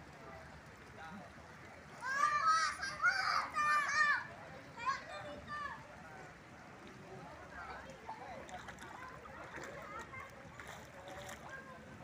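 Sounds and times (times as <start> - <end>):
children calling out and shouting: 2.0 - 5.9.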